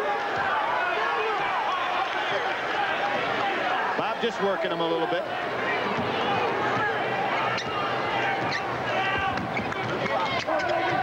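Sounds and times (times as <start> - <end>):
arena crowd din: 0.0 - 11.0
sneakers squeaking: 8.4 - 11.0.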